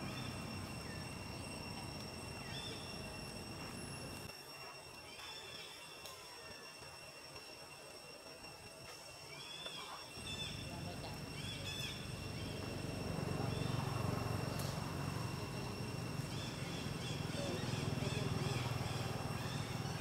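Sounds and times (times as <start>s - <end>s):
bird chirps: 0.0s - 3.7s, 9.3s - 20.0s
high insect drone: 0.0s - 20.0s.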